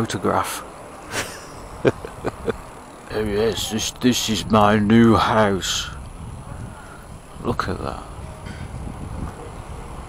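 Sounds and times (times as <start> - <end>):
tyre noise on tarmac: 0.6 - 10.0
wind on microphone: 1.7 - 10.0.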